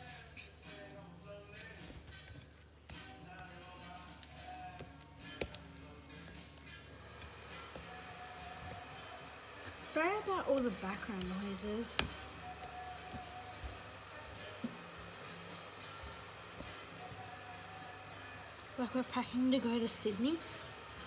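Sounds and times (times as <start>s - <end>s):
faint background music: 0.0s - 21.0s.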